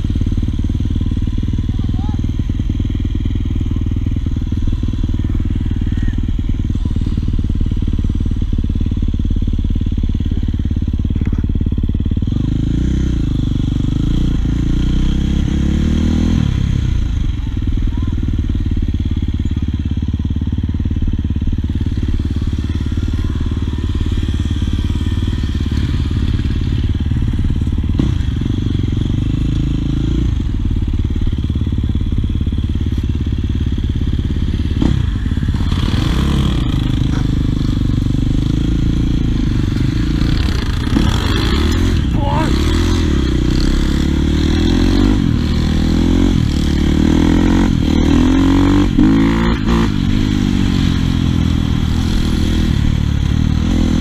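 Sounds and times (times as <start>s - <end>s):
dirt bike engine revving: 0.0s - 17.1s, 18.6s - 54.0s.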